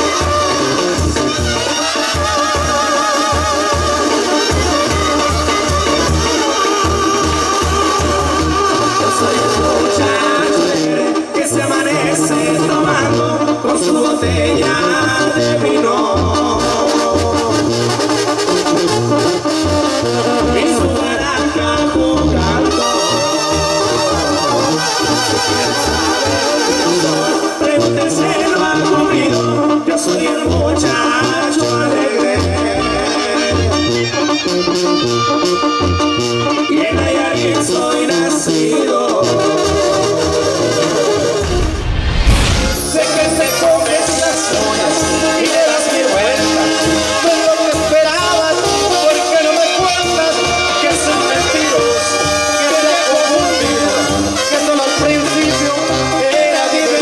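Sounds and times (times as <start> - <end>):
brass band playing: 0.0 - 57.0
tuba bass line: 0.0 - 57.0.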